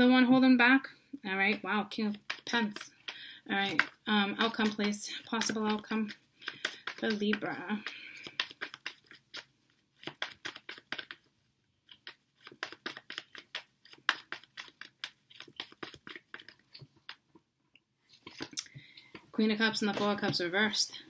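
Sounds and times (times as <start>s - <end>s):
cards being shuffled: 12.0s - 16.8s.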